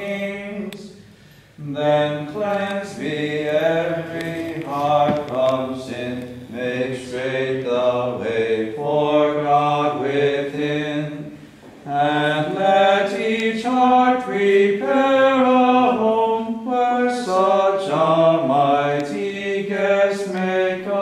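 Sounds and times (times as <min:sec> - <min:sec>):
voices singing slow chant: 0:00.0 - 0:21.0.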